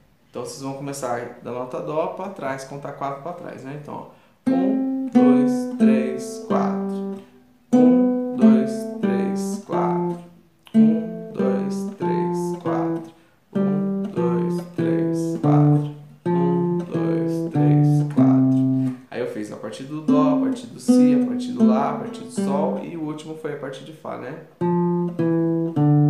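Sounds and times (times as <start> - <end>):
classical guitar notes: 4.4 - 19.1, 20.0 - 26.0.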